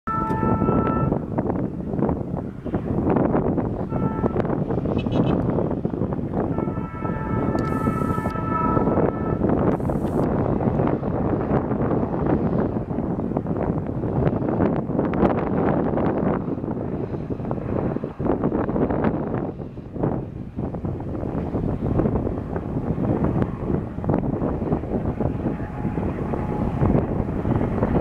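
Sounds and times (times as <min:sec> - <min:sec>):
locomotive horn blasts: 0:00.1 - 0:01.4, 0:03.8 - 0:05.5, 0:06.4 - 0:10.3, 0:24.4 - 0:27.9
wind on microphone: 0:00.1 - 0:28.0
locomotive engine working hard: 0:20.5 - 0:28.0.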